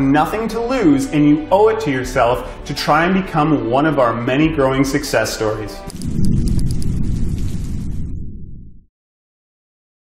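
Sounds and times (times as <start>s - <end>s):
deep low rumbling: 5.9s - 8.9s.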